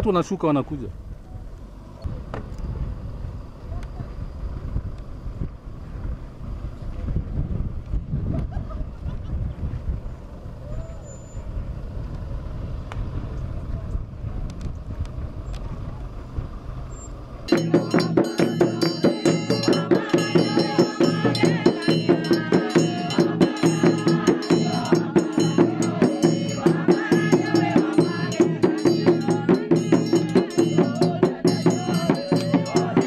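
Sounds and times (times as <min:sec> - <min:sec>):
minibus engines rumbling: 0:00.0 - 0:33.0
rhythmic music with percussion: 0:17.5 - 0:33.0.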